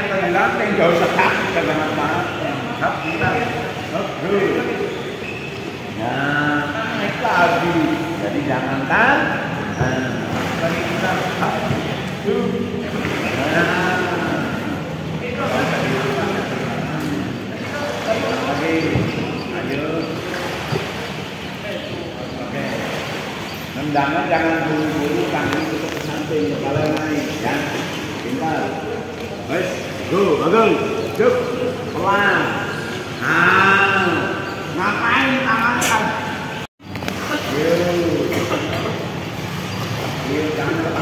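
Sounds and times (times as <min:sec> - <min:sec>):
indistinct voices: 0:00.0 - 0:41.0
water splashing: 0:00.0 - 0:41.0.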